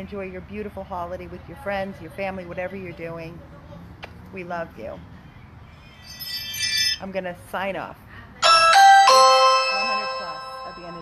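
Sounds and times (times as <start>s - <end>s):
electronic three-note chime: 8.4s - 11.0s.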